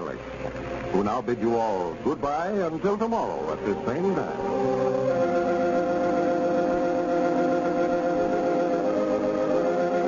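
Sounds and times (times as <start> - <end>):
organ sustained chord: 0.0 - 10.0.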